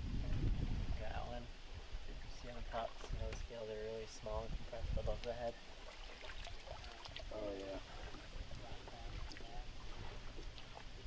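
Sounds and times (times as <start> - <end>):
water sloshing: 5.2 - 11.0.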